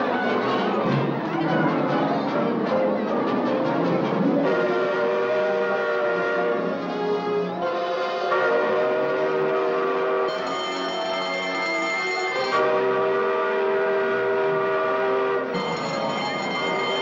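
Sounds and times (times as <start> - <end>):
horn-like alarm wail: 4.4 - 6.7, 7.6 - 17.0
electric alarm bell ringing: 10.3 - 12.6, 15.6 - 17.0.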